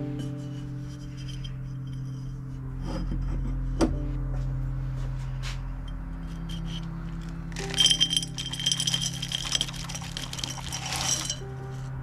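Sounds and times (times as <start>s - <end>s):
gravelly soil poured into clay pot: 7.2s - 11.5s.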